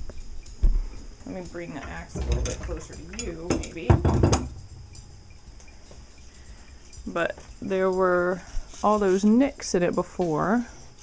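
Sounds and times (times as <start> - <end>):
metal clanks and clinks: 1.3 - 6.2.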